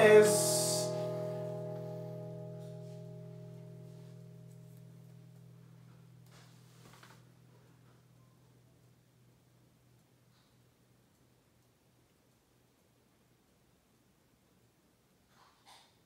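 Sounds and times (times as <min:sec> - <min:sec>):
acoustic guitar chord ringing: 0:00.0 - 0:08.4.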